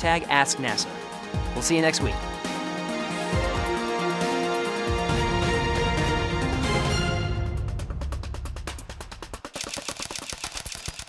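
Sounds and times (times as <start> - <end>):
deep bass music: 1.2 - 9.4
rapid sharp clicks: 9.4 - 11.0.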